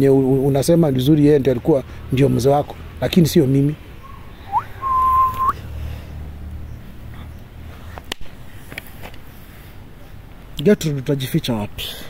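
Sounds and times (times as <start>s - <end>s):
whistled note: 4.5s - 5.6s.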